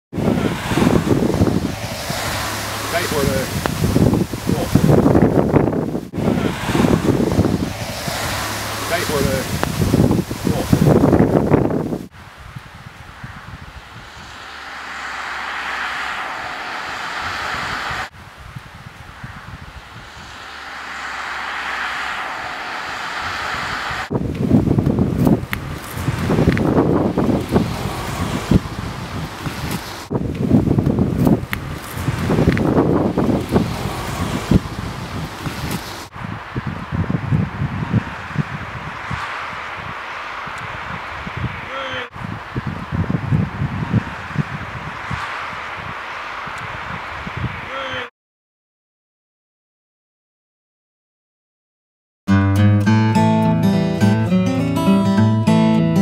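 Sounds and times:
wind gusts buffeting microphone: 0:00.1 - 0:48.0
wind hiss: 0:00.2 - 0:48.0.

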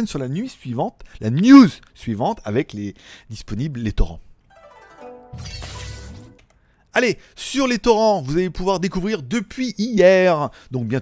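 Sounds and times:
ringing chime tones: 0:04.5 - 0:06.4.

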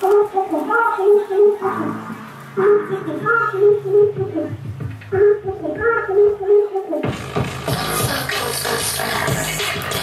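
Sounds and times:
hip-hop dance track: 0:07.0 - 0:10.0.

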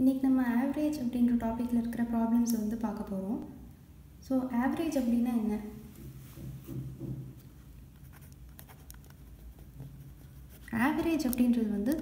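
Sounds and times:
pen scratching on paper: 0:08.0 - 0:12.0.

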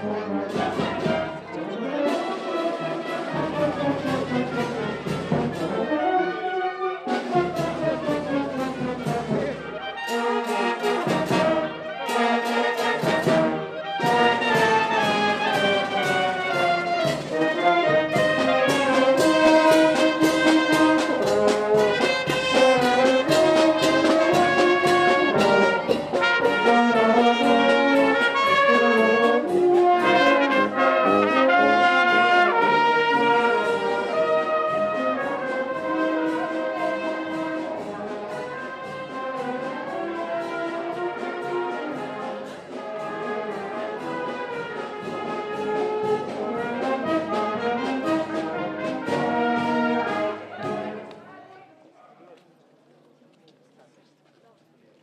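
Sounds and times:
marching brass band playing: 0:00.0 - 0:51.1.

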